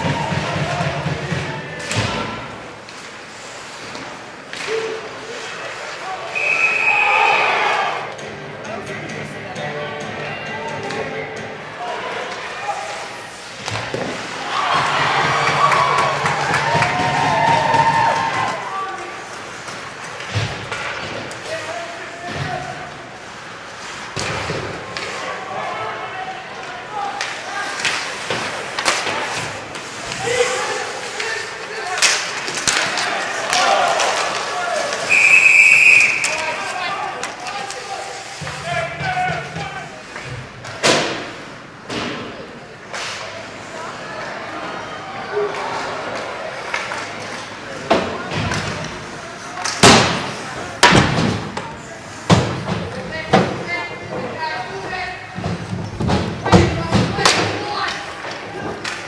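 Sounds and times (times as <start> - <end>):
hockey sticks and puck clacking: 0.0 - 6.6, 12.2 - 25.4, 26.5 - 43.6, 45.4 - 59.0
whistle blast: 6.4 - 7.4, 35.1 - 36.4
people shouting: 6.8 - 8.1.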